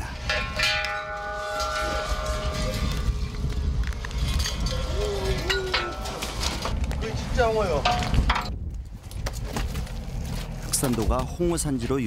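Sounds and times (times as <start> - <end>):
low rumble: 0.0 - 10.7.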